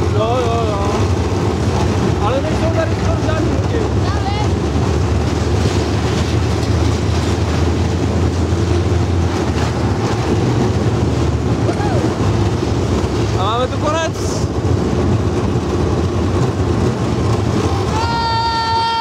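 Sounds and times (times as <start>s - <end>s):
roller coaster wheels rumbling: 0.0s - 19.0s
wind buffeting microphone: 0.0s - 19.0s.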